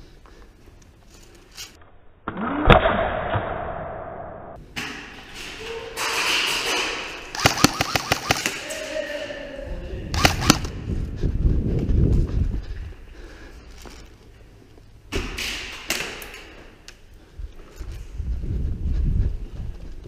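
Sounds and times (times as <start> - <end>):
airsoft rifle shots: 7.3 - 8.6, 10.1 - 10.8.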